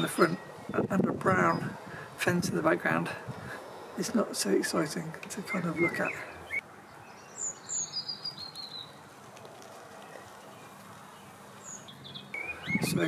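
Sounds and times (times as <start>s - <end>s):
small birds chirping: 0.0s - 13.0s
steady outdoor hiss: 0.0s - 13.0s.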